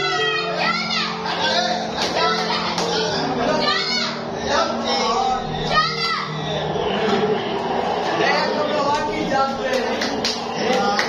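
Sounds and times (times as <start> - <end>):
young voices shouting and cheering: 0.0 - 8.6
background music with low notes: 0.0 - 11.0.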